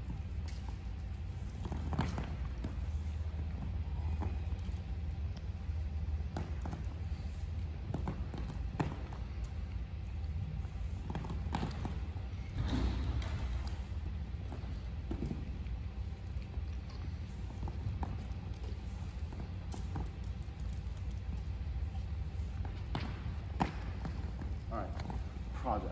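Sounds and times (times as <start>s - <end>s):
steady low hum: 0.0s - 25.9s.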